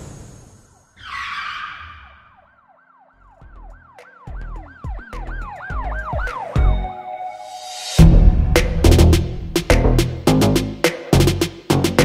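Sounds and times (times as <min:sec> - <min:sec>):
siren wailing up and down: 0:00.8 - 0:07.0
deep bass hits: 0:08.0 - 0:12.0.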